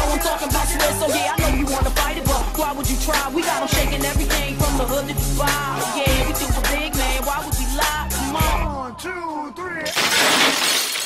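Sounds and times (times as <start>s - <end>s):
glass shattering crash: 9.9s - 11.0s.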